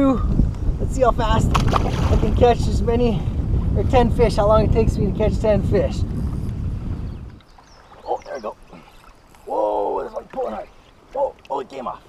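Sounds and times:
wind buffeting microphone: 0.0s - 11.2s
open-water background: 0.0s - 12.0s.

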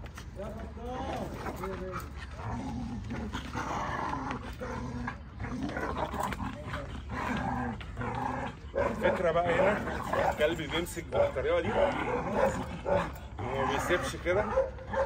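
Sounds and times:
dog growling and barking: 1.1s - 15.0s.

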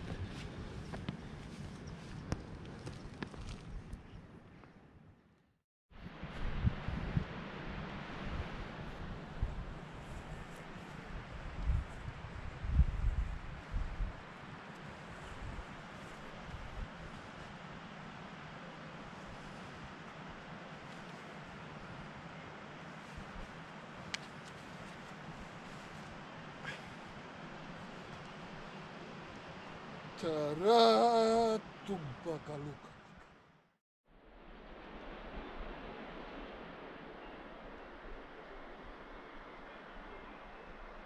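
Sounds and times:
wind blowing across microphone: 0.0s - 4.8s, 6.0s - 30.2s.

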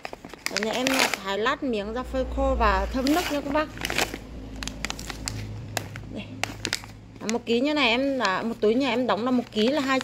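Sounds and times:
plastic bag crinkling: 0.0s - 1.6s, 2.8s - 10.0s.

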